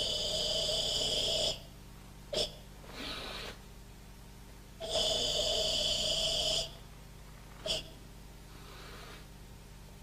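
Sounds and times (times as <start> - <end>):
strained hissing exhale: 2.4 - 3.6, 8.5 - 9.3
short sharp breath: 2.9 - 3.6, 8.5 - 9.3.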